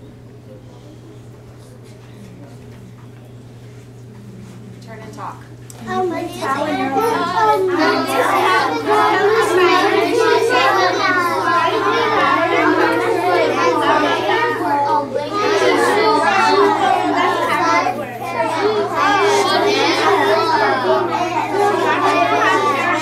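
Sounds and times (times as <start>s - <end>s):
children talking: 0.0s - 23.0s.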